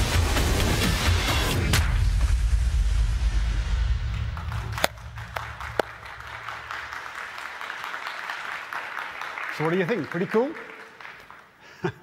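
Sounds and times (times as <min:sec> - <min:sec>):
sharp claps: 0:04.1 - 0:11.6
audience applauding: 0:04.2 - 0:12.0.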